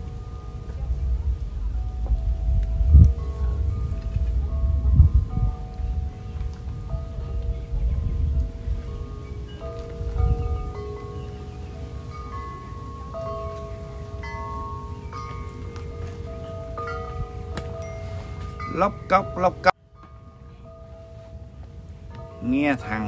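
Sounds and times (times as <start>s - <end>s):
low rumble: 0.0s - 19.1s
wind chimes ringing: 0.0s - 23.0s.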